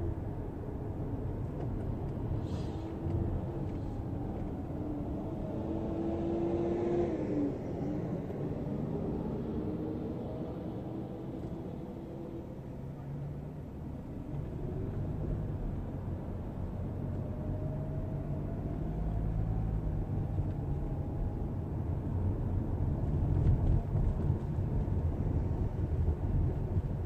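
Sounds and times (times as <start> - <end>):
car engine and road rumble: 0.0 - 27.0.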